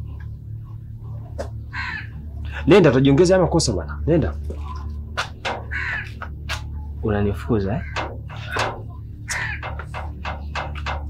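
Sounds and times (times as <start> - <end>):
low steady drone: 0.0 - 11.0
crows cawing: 1.6 - 2.7, 4.6 - 11.0.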